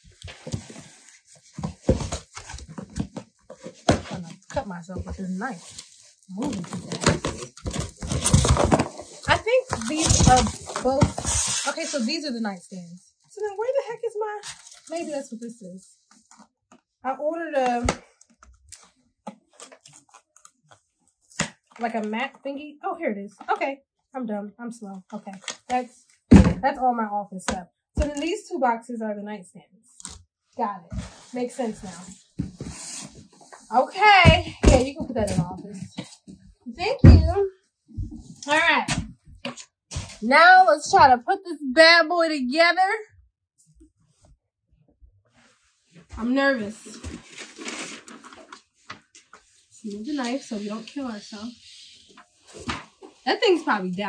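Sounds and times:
paper packaging rustling: 0:00.0 - 0:12.4, 0:14.4 - 0:15.4, 0:18.1 - 0:20.9, 0:46.6 - 0:51.0.

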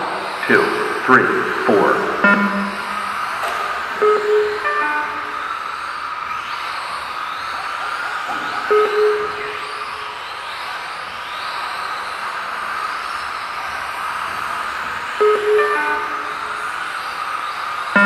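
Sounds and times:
short electronic beeps: 0:00.0 - 0:05.6, 0:08.4 - 0:10.0, 0:15.2 - 0:16.6
electric motors whining: 0:00.0 - 0:18.0.

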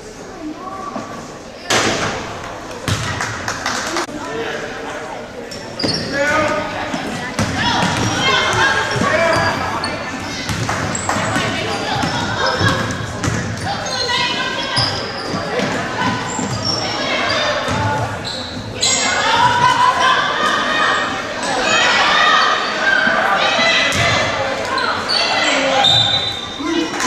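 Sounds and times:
people calling and shouting: 0:00.0 - 0:27.0.

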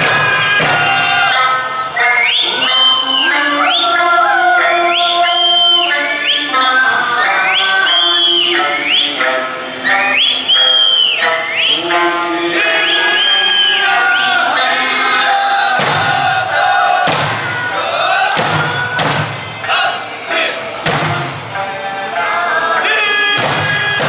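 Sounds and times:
folk music with singing: 0:00.0 - 0:24.0
shrill finger whistles: 0:00.1 - 0:12.0, 0:12.6 - 0:15.5.

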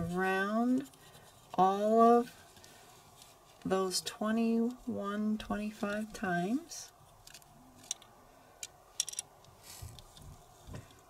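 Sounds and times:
soft rustle of thread: 0:00.0 - 0:03.9, 0:09.4 - 0:11.0.

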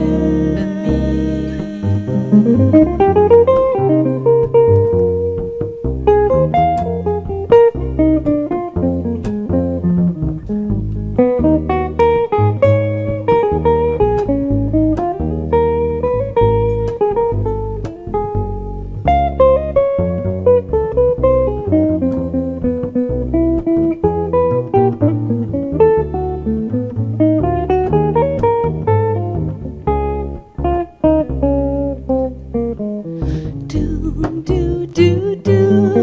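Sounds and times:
double bass line: 0:00.0 - 0:36.0
jazz guitar solo: 0:00.0 - 0:36.0.

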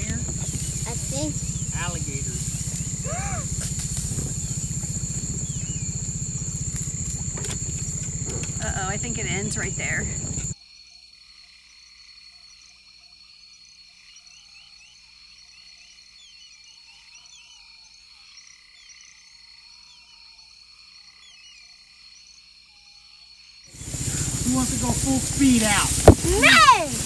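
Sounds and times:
loud noise: 0:00.0 - 0:10.6, 0:23.8 - 0:27.0
thin steady high tone: 0:00.0 - 0:10.6, 0:23.8 - 0:27.0
frogs croaking: 0:00.0 - 0:27.0
person speaking: 0:24.4 - 0:27.0.

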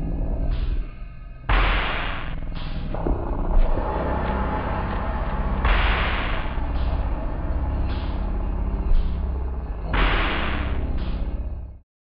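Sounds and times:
slowed-down deep drone: 0:00.0 - 0:11.8.

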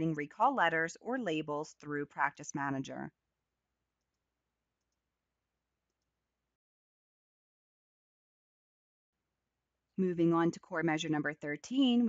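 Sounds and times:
computer mouse clicks: 0:04.8 - 0:05.0, 0:05.9 - 0:06.2.

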